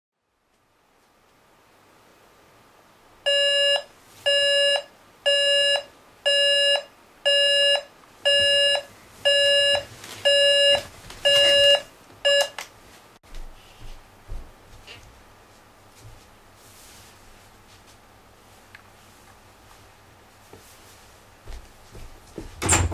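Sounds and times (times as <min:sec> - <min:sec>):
alarm clock beeping: 0:03.3 - 0:12.6.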